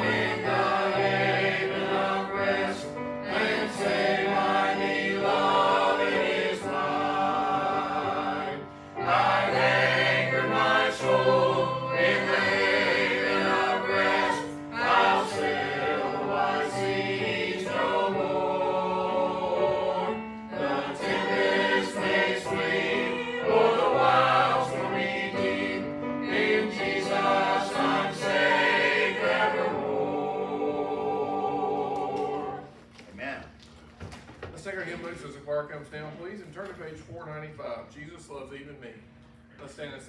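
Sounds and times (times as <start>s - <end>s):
choir singing a hymn: 0.0s - 32.9s.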